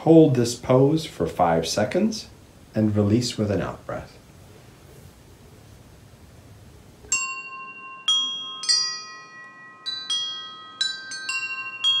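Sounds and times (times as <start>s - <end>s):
faint room hiss: 0.0s - 12.0s
chimes ringing: 7.1s - 12.0s.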